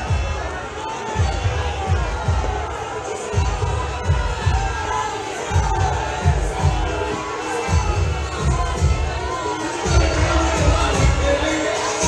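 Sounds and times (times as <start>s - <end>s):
crowd cheering and shouting: 0.0s - 12.0s.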